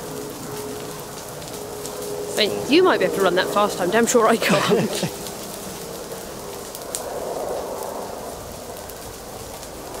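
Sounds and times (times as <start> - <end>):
fire crackling and hissing: 0.0 - 10.0
fire popping: 0.0 - 10.0.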